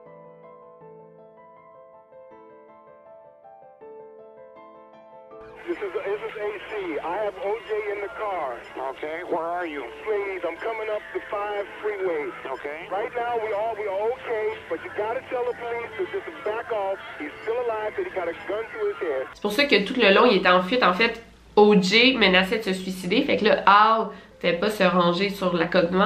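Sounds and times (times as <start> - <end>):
faint music: 5.4 - 26.0
person talking on broadcast: 5.5 - 26.0.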